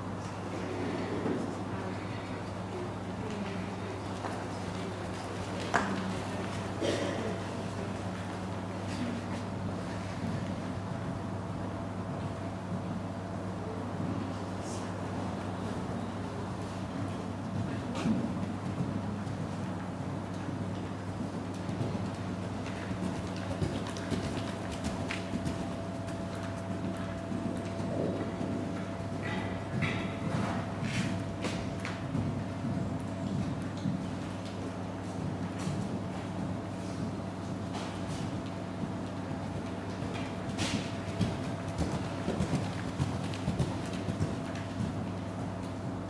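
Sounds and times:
steady low hum: 0.0s - 46.0s
horse hoofbeats on sand: 16.2s - 46.0s.

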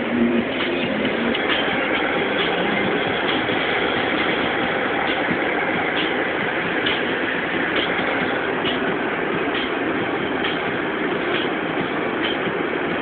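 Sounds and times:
car driving on freeway: 0.0s - 13.0s.

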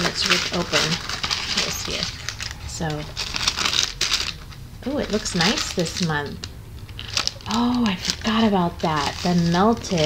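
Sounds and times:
tissue paper rustling: 0.0s - 10.0s.

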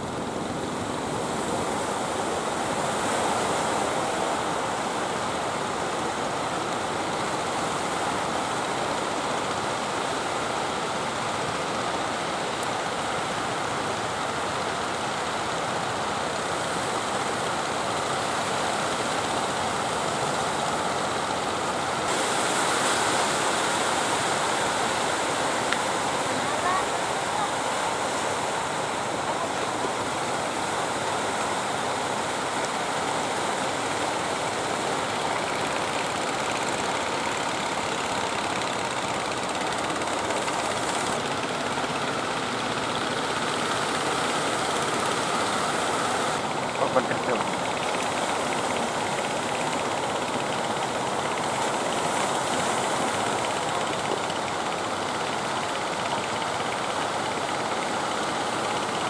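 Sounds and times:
surf and breaking waves: 0.0s - 59.0s.

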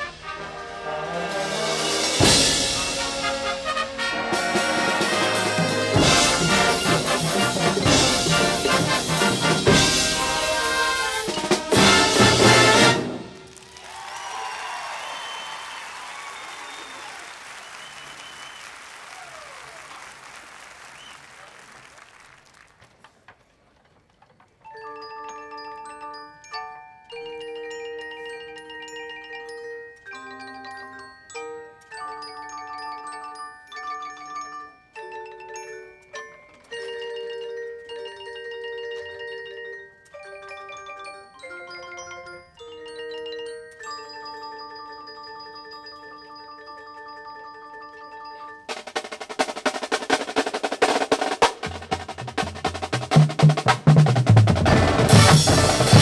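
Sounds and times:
mallet percussion notes: 0.0s - 13.4s, 24.5s - 56.0s
marching band playing: 0.0s - 13.8s, 48.7s - 56.0s
crowd applause: 12.5s - 23.1s.

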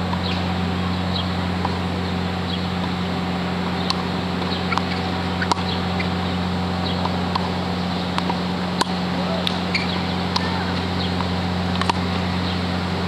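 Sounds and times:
steady low hum: 0.0s - 13.0s
small birds chirping: 0.2s - 1.4s, 2.0s - 2.8s, 3.7s - 7.1s, 9.3s - 11.3s, 12.3s - 12.7s
tennis balls being hit: 3.7s - 6.2s, 6.8s - 12.6s.

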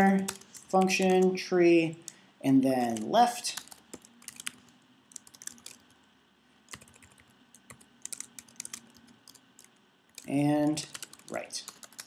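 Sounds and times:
computer keyboard typing: 0.0s - 1.4s, 2.8s - 6.0s, 6.7s - 12.0s.

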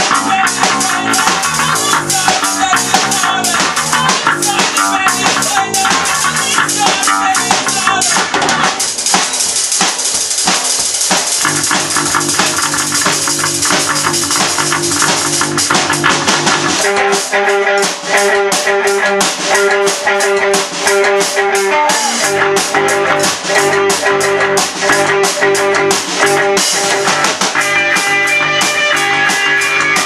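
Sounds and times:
rock band playing loudly: 0.0s - 30.0s
repeated high guitar note: 19.9s - 30.0s.

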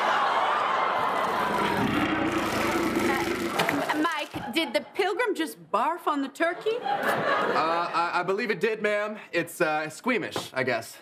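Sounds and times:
audience reacting and laughing: 0.0s - 4.7s, 6.6s - 8.1s
low rumble: 1.0s - 4.0s.

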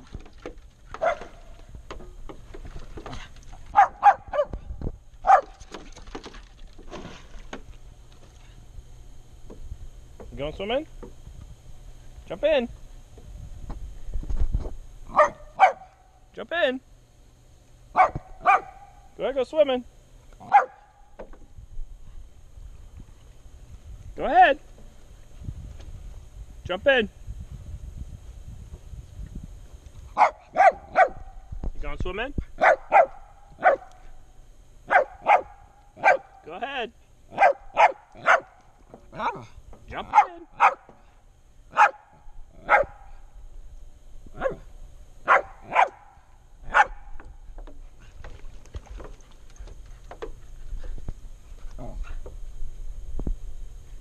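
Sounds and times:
dog barking: 1.0s - 1.4s, 3.7s - 4.6s, 5.2s - 5.6s, 15.1s - 16.0s, 18.0s - 19.0s, 20.4s - 20.9s, 30.2s - 31.2s, 32.6s - 33.9s, 34.9s - 36.3s, 37.3s - 38.6s, 40.1s - 40.9s, 41.7s - 43.1s, 44.4s - 44.6s, 45.2s - 47.1s.

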